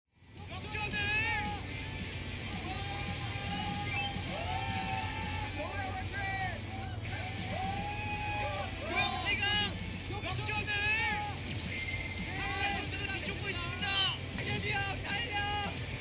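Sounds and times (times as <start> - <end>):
background music: 0.2 - 16.0
people yelling and cheering: 0.3 - 16.0
excited shouting: 0.4 - 11.5, 12.2 - 16.0.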